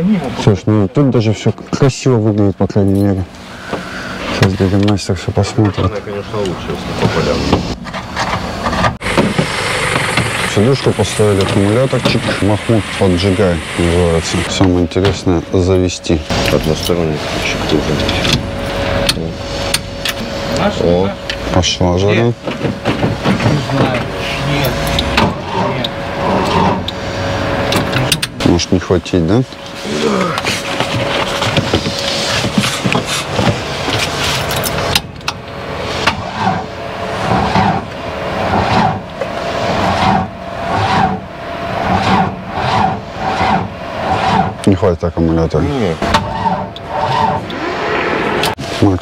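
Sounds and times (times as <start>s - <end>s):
engine cranking on starter motor: 8.8s - 14.6s.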